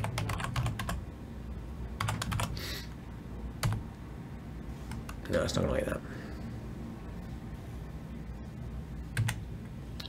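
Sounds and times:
computer keyboard typing: 0.0s - 1.0s, 2.0s - 2.6s, 3.6s - 3.8s, 9.1s - 9.4s.

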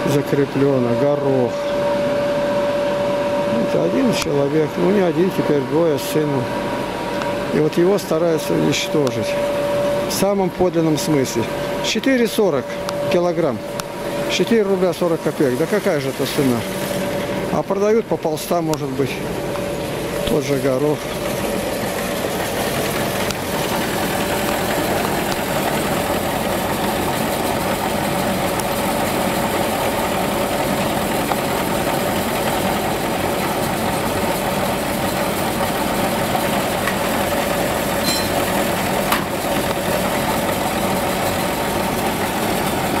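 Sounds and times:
diesel tractor idling: 0.0s - 43.0s
grain elevator running: 0.0s - 43.0s
grain pouring into trailer: 14.3s - 17.5s, 20.2s - 43.0s.

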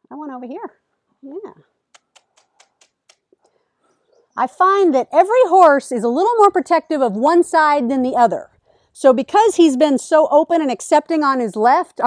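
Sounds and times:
faint clicks: 1.9s - 3.6s.

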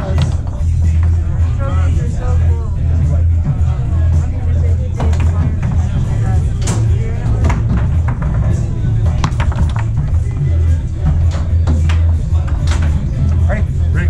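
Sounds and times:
foosball ball clacks: 0.0s - 1.2s, 5.0s - 13.4s
background music with bass: 0.0s - 14.0s
voices in hall: 0.0s - 14.0s.

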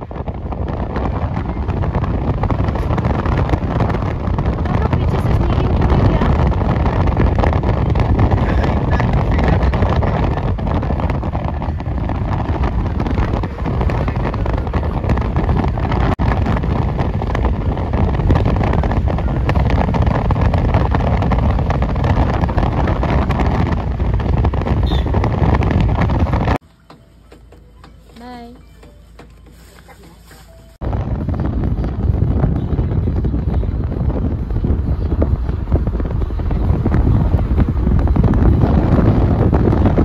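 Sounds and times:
wind buffeting microphone: 0.0s - 26.6s, 28.2s - 40.0s
vehicle road noise: 0.0s - 40.0s.

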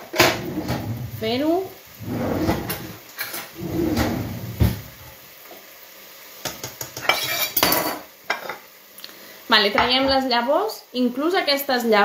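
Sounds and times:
cutlery and plate clattering: 6.5s - 8.6s.

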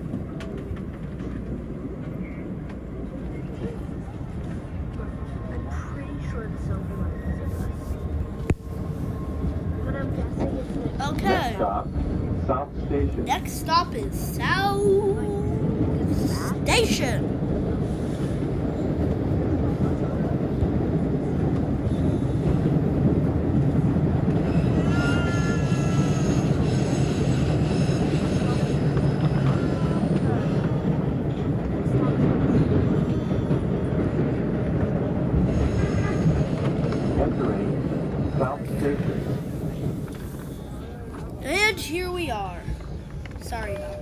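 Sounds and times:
subway wheels rumbling on rail: 0.0s - 44.0s.

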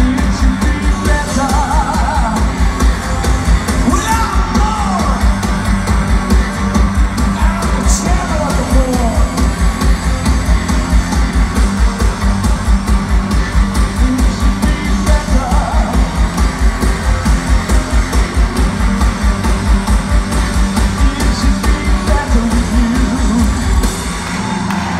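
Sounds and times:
live electronic rock band: 0.0s - 24.9s
pounding beat: 0.0s - 24.9s.

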